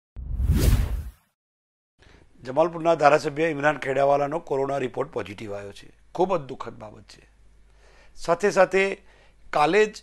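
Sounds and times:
whoosh sound effect: 0:00.2 - 0:01.2.

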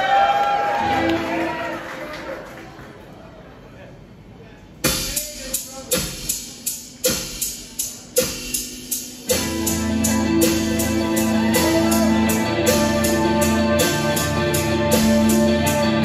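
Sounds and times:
percussive drum beat: 0:04.8 - 0:16.0
electric guitars and bass: 0:09.3 - 0:16.0.

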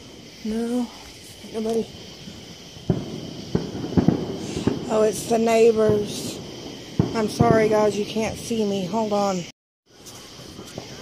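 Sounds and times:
crickets chirring: 0:00.0 - 0:11.0
fireworks popping: 0:00.0 - 0:11.0.

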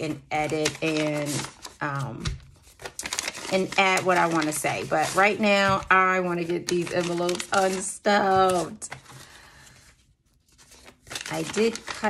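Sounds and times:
paper envelopes rustling: 0:00.0 - 0:12.0.

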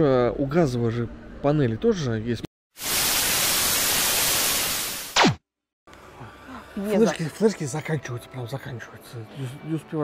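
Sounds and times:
tv static hiss: 0:02.8 - 0:05.2.

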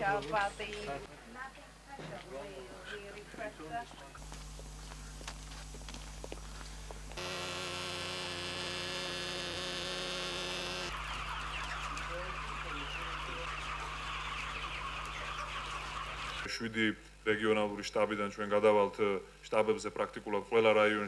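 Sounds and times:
motor droning: 0:04.2 - 0:16.5
chicks peeping: 0:09.9 - 0:16.5.

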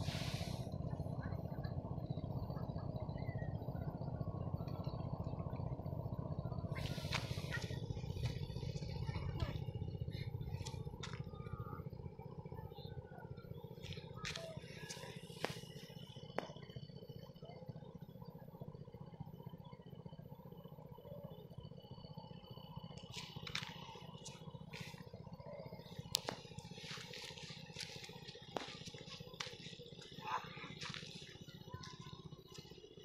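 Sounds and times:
steady low rumble: 0:00.0 - 0:33.0.

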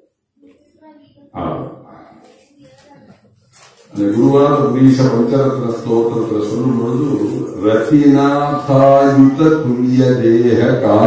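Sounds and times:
faint voice sounds: 0:00.0 - 0:04.2.

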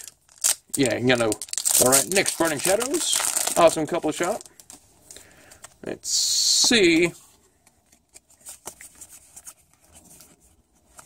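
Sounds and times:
trading cards rustling: 0:00.0 - 0:05.8, 0:06.4 - 0:11.0.

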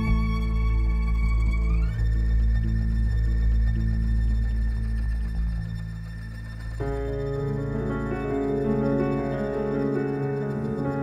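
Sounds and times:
keyboard and bass drone: 0:00.0 - 0:11.0.

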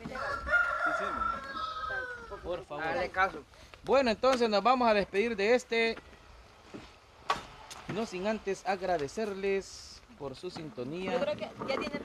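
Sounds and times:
rooster crowing: 0:00.0 - 0:02.6.

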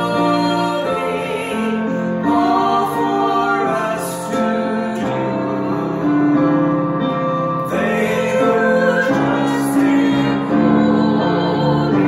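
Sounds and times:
woman singing a hymn: 0:00.0 - 0:05.8
digital piano chords: 0:00.0 - 0:12.0.

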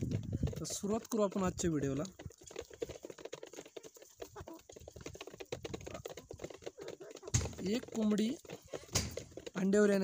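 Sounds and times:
hens pecking feed: 0:00.0 - 0:10.0.

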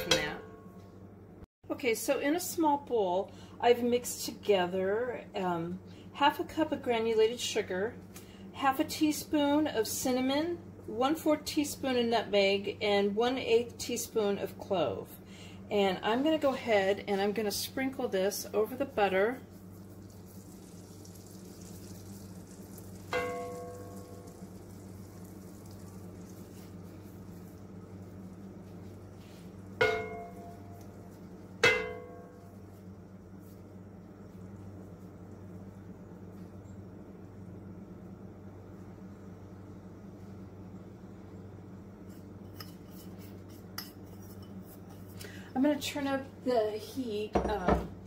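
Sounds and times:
ceramic bowl clinking on skillet: 0:00.0 - 0:00.7, 0:23.0 - 0:24.6, 0:29.8 - 0:31.0, 0:31.6 - 0:32.6
steady low hum: 0:00.0 - 0:48.0.

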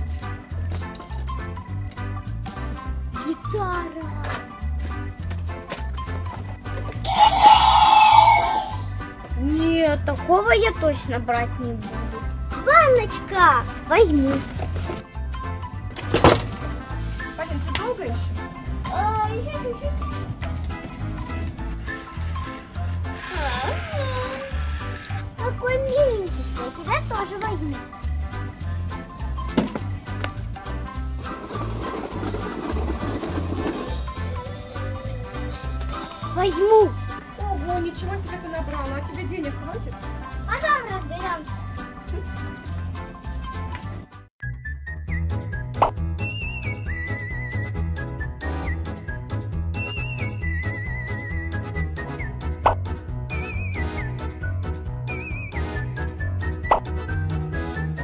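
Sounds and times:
children's music with beat: 0:00.0 - 0:23.1, 0:25.3 - 0:58.0
electronic toy dinosaur roar: 0:07.0 - 0:08.9, 0:23.0 - 0:25.3
rough grainy noise: 0:07.0 - 0:08.9.

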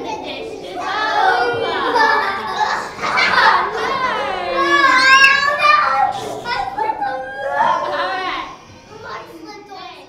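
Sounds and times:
children calling out and chattering: 0:00.0 - 0:10.0.

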